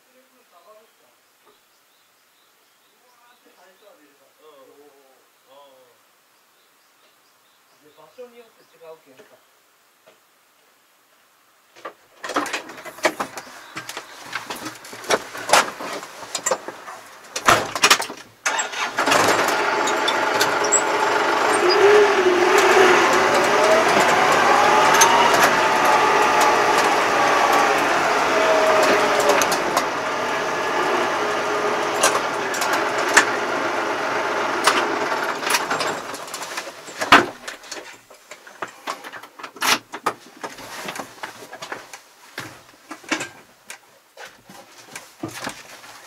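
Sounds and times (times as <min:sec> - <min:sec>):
vehicle engine running: 0:18.5 - 0:36.9.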